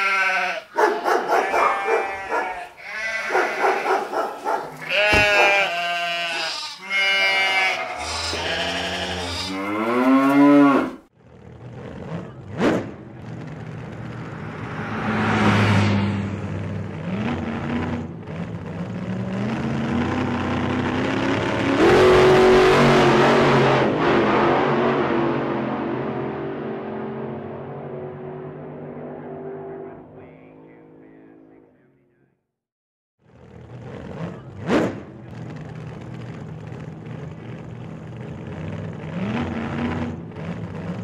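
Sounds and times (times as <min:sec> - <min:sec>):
car engine revving and accelerating: 0:09.6 - 0:31.3, 0:33.4 - 0:41.0.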